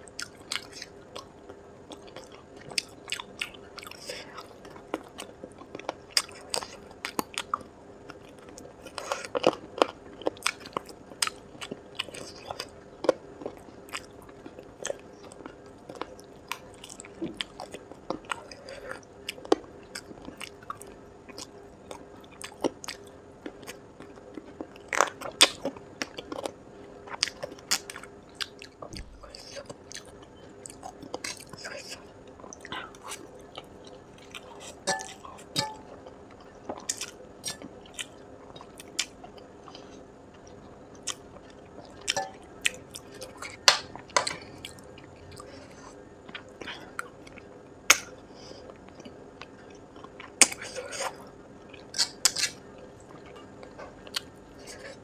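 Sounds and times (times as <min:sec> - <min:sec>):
faint steady hum: 0:00.0 - 0:55.0
biting and chewing food: 0:00.1 - 0:55.0.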